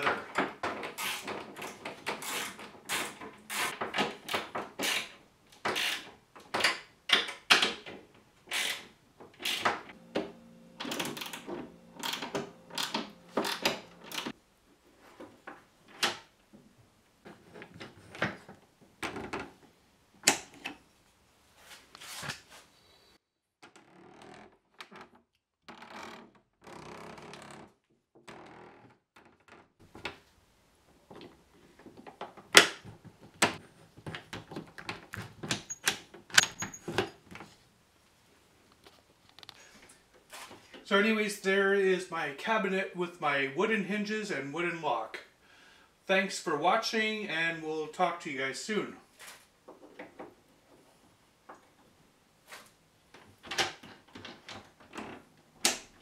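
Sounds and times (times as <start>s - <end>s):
wooden lock parts clicking: 33.4s - 37.1s.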